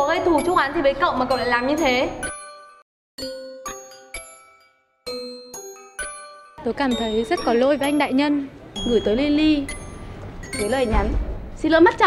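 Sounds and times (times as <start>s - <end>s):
bell-like chime jingle: 0.0s - 11.1s.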